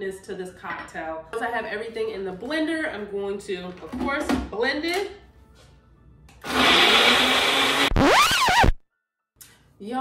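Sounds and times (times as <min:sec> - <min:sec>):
blender running: 0:06.4 - 0:08.8
wavering sliding tones effect: 0:08.0 - 0:08.8.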